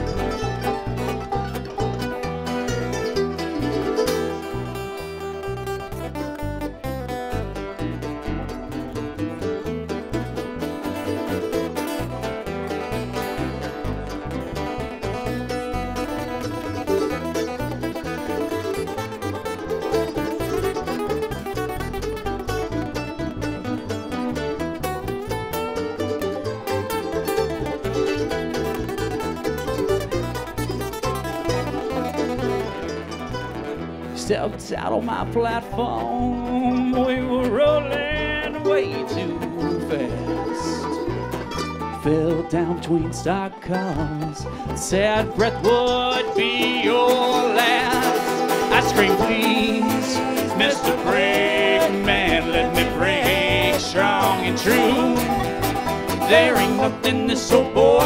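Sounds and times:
bluegrass band playing: 0.0 - 58.0.

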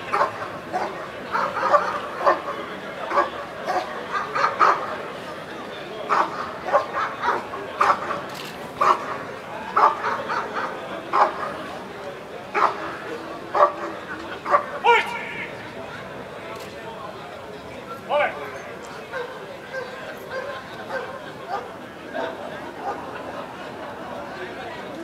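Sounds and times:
dog barking: 0.1 - 2.5, 3.1 - 4.9, 6.1 - 8.2, 8.8 - 9.1, 9.8 - 11.6, 12.5 - 12.9, 13.5 - 15.1, 19.1 - 21.7.

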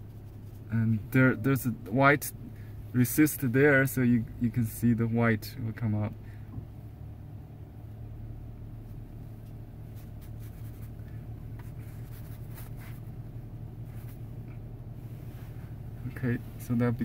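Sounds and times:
steady low hum: 0.0 - 17.0
brush scratching across paper: 11.6 - 13.1.

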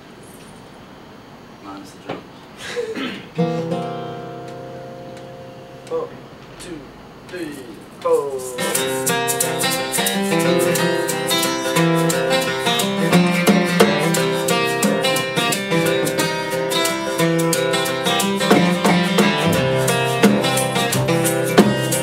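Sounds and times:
acoustic guitars strumming: 3.0 - 22.0
upright bass: 8.6 - 22.0
snare drum: 18.4 - 22.0.

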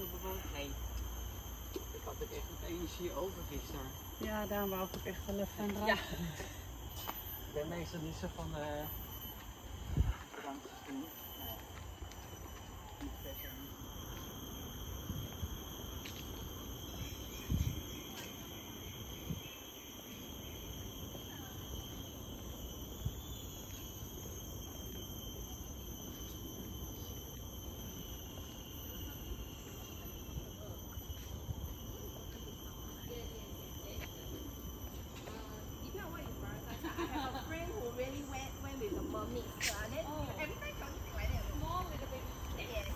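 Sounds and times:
high-pitched insect chorus: 0.0 - 42.9.

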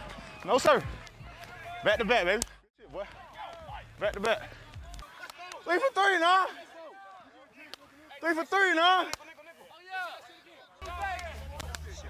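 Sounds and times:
men talking: 0.0 - 12.0
man shouting: 0.4 - 9.2.

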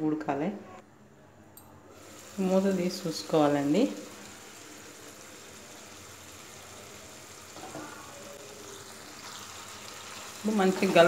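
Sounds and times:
curry simmering in a pan: 2.0 - 11.0.

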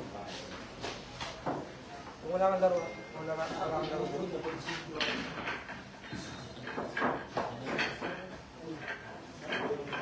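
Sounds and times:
billiard balls clacking: 4.8 - 10.0.

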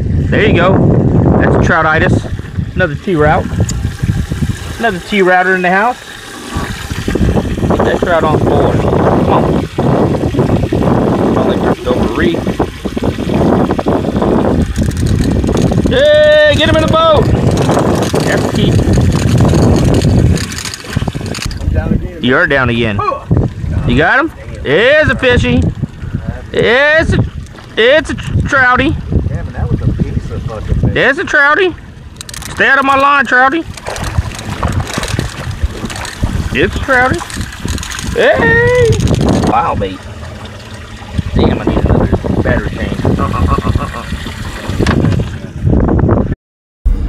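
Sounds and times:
wind buffeting the microphone: 0.0 - 47.0
fish splashing in water: 2.3 - 16.0, 16.6 - 21.7, 33.5 - 45.6
indistinct voices: 38.0 - 40.0.

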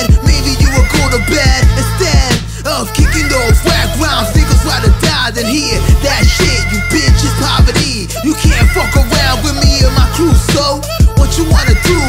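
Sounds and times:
hip hop beat: 0.0 - 12.0
rapper's vocal: 0.0 - 12.0.

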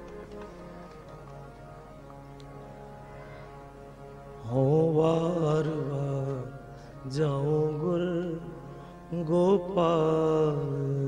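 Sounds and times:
harmonium sustaining a chord: 0.0 - 11.0.

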